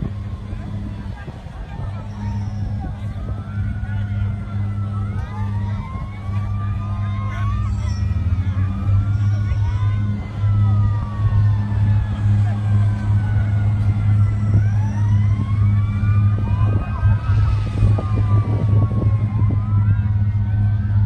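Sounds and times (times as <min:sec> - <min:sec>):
fire truck sirens wailing: 0:00.0 - 0:21.0
steady low drone: 0:00.0 - 0:21.0.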